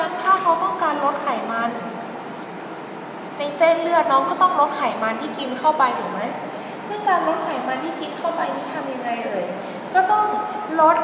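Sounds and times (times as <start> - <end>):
marker pen writing on paper: 2.1 - 5.6.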